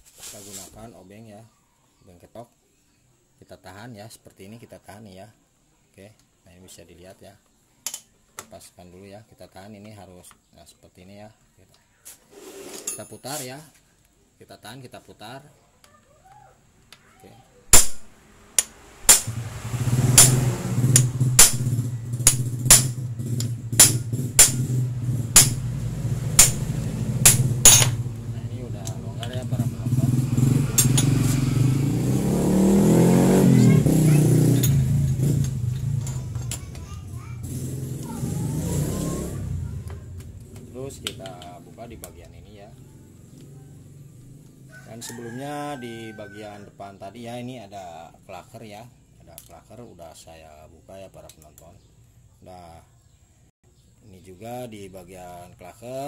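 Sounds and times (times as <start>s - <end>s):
engine running: 18.6s - 41.4s
sharp clicks: 20.2s - 21.6s.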